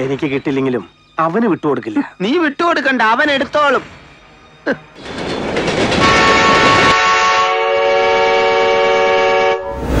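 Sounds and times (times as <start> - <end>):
train rumbling: 3.0 - 10.0
rush of passing train: 4.0 - 10.0
train whistle chord: 6.0 - 10.0.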